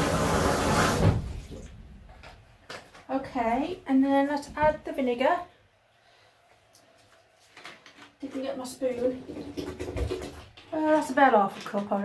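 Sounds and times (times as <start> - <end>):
plastic bottle rustling: 7.0 - 12.0.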